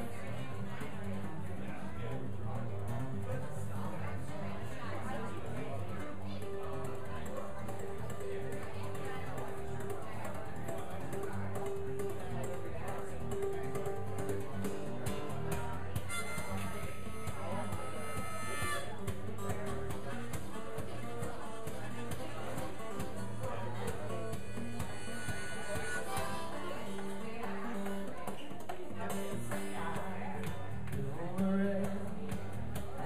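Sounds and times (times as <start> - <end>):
acoustic guitar strumming: 0.0 - 33.0
harmonica playing: 16.0 - 18.9, 24.2 - 27.2.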